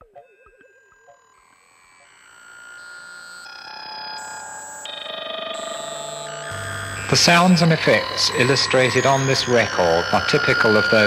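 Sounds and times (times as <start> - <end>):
electronic synth music: 0.0 - 11.0.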